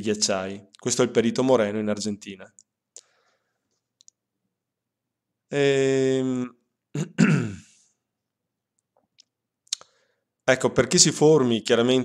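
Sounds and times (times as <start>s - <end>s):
man clearing his throat: 6.9s - 7.8s.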